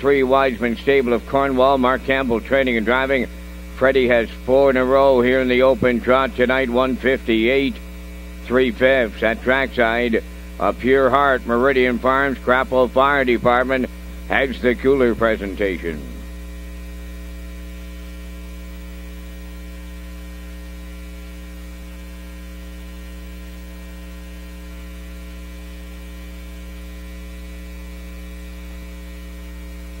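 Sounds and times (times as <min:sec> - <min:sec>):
electrical mains hum: 0:00.0 - 0:30.0.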